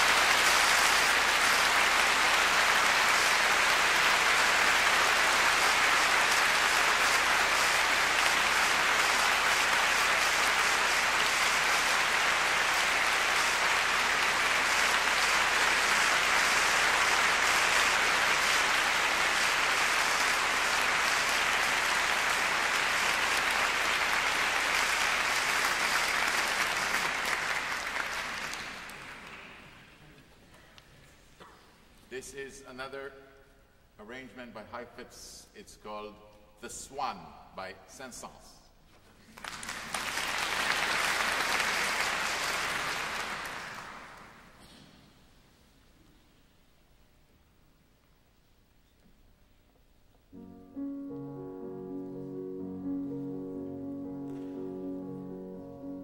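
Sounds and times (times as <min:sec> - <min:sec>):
audience applauding: 0:00.0 - 0:30.1, 0:39.2 - 0:44.6.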